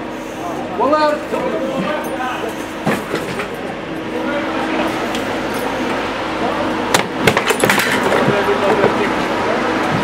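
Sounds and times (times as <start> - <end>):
machinery drone: 0.0 - 10.0.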